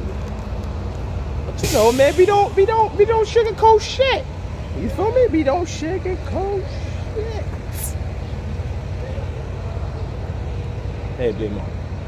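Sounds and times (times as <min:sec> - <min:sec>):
city street rumble: 0:00.0 - 0:12.0.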